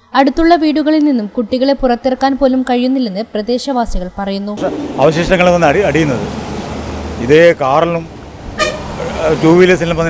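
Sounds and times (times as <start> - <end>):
street traffic: 0.0 - 10.0
vehicle horn toot: 8.6 - 8.9.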